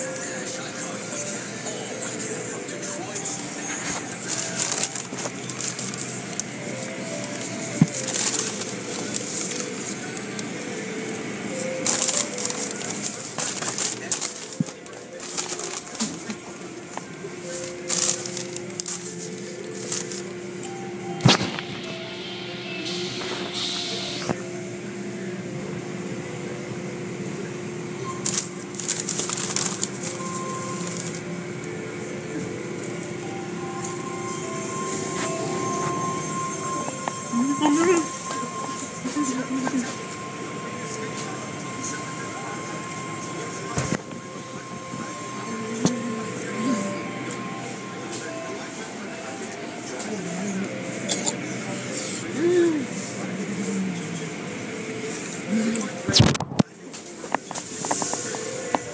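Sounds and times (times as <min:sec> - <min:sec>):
melodic music: 0:00.0 - 0:27.0, 0:27.6 - 0:53.7.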